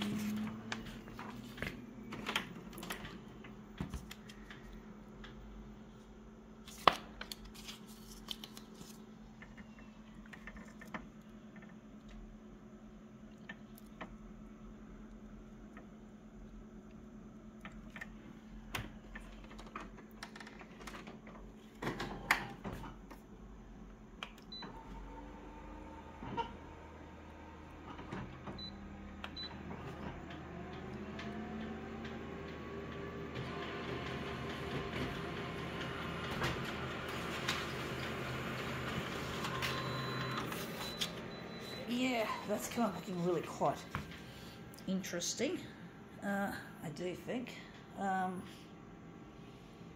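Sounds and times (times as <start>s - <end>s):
copier motors humming and whirring: 0.0s - 46.8s.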